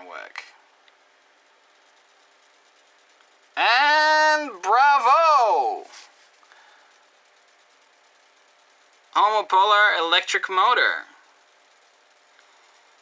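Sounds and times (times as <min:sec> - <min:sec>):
person's loud wordless exclamation: 0:03.6 - 0:06.0.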